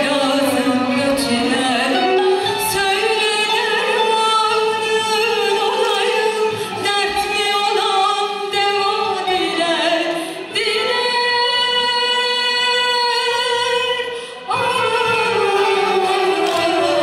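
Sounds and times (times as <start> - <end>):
traditional instrument ensemble: 0.0 - 12.2, 14.1 - 17.0
woman singing with vibrato: 0.0 - 17.0
choir singing: 15.5 - 17.0.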